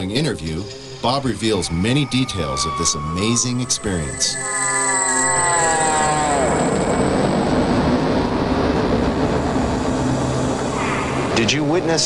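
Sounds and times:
whine falling in pitch: 0.0s - 12.0s
rumbling roar: 5.2s - 12.0s.

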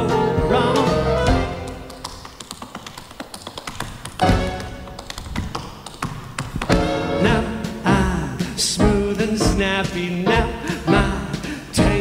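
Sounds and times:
band playing: 0.0s - 1.9s, 4.2s - 5.0s, 6.7s - 12.0s
tap shoes clicking on stage floor: 0.4s - 12.0s.

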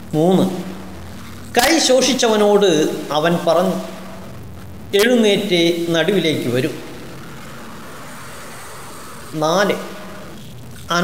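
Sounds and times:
faint high whine: 0.0s - 11.0s
steady background hiss: 0.0s - 11.0s.

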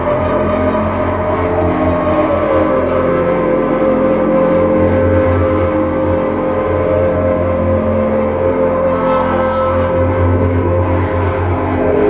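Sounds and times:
electric guitar: 0.0s - 12.0s
lap steel guitar drone: 0.0s - 12.0s
low hum: 0.0s - 12.0s.

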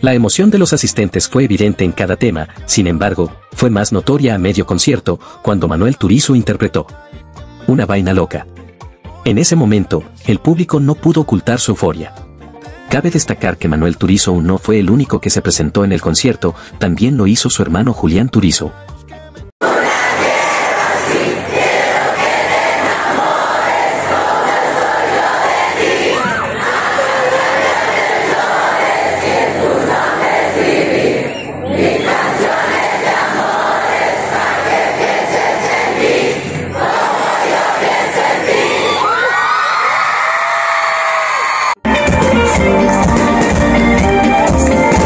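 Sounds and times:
crowd cheering and screaming: 19.6s - 41.8s
shrill screams gliding in pitch: 19.7s - 41.8s.

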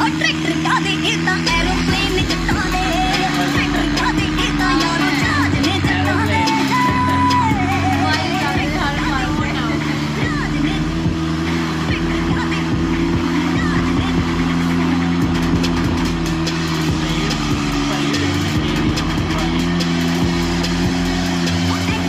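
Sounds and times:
music: 0.0s - 22.0s
tractor engine under load: 0.0s - 22.0s
voices: 0.0s - 22.0s.

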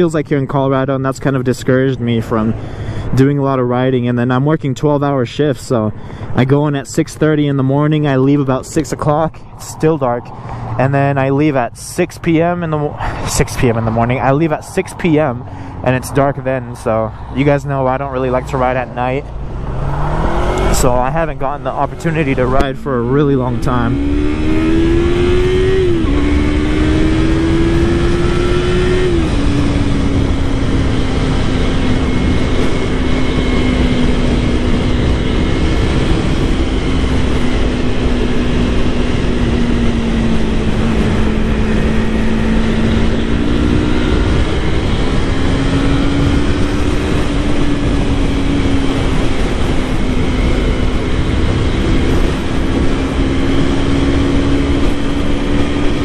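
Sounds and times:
wind noise on microphone: 12.1s - 56.0s
motorcycle engine pulling away: 23.6s - 56.0s.

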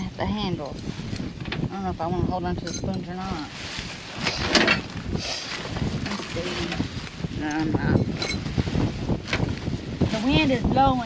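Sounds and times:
wind buffeting microphone: 0.0s - 11.0s
plastic bag rustling: 0.2s - 11.0s.

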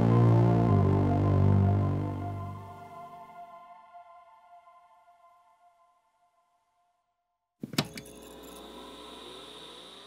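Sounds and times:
soft ambient synth music: 0.0s - 7.0s.

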